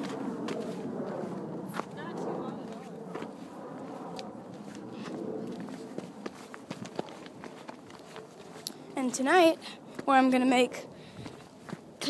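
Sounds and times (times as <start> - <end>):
footsteps on rock: 0.0 - 3.4, 4.5 - 8.8.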